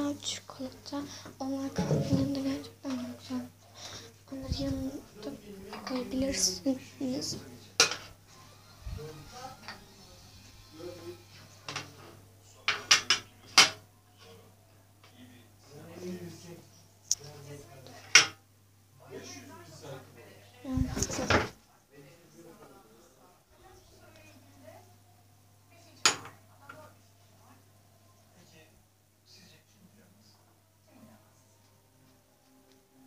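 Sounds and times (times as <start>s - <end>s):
dishes clinking and knocking: 1.7s - 2.4s, 7.8s - 8.2s, 11.6s - 13.8s, 26.0s - 26.8s
dishes clinking: 7.8s - 8.2s, 26.0s - 26.8s.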